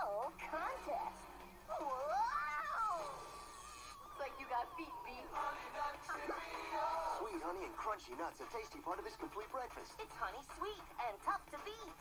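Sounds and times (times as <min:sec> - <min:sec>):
cartoon wailing cry: 0:01.7 - 0:05.1.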